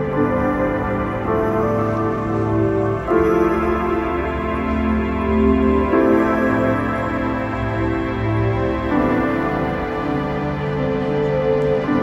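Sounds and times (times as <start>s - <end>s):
soft keyboard chords: 0.0s - 12.0s.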